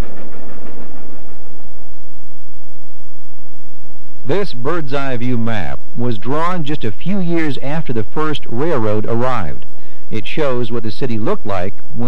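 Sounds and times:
steam train rumbling: 0.0 - 2.0.

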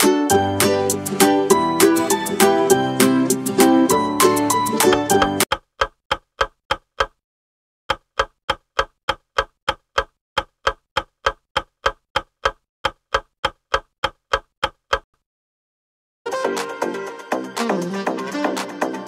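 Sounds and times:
background music: 0.0 - 5.5, 16.3 - 19.0
countdown timer clock ticking: 7.9 - 15.1.

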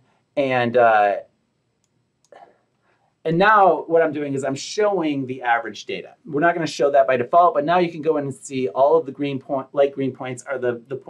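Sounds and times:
person saying uh: 0.4 - 1.2, 3.3 - 11.0.

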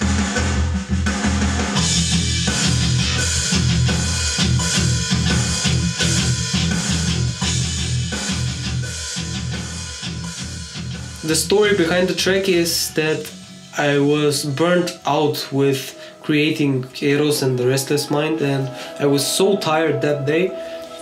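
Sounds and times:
metal music with chugging guitar: 0.0 - 15.0
drum kit: 0.0 - 21.0.

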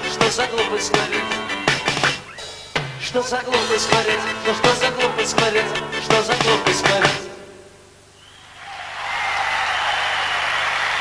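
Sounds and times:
crowd noise: 8.4 - 11.0
audience applause: 8.6 - 11.0.

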